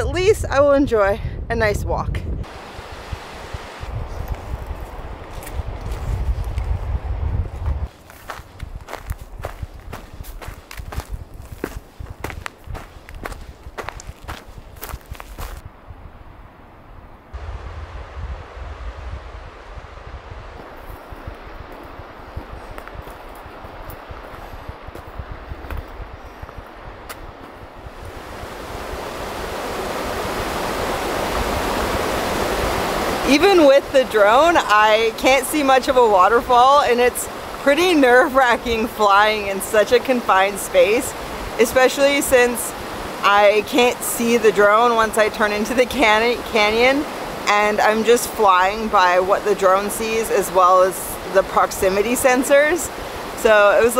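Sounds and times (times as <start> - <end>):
wind buffeting microphone: 0.0 - 53.9
creek rushing: 2.4 - 11.1, 17.3 - 53.9
footsteps on dry grass and twigs: 4.0 - 15.6.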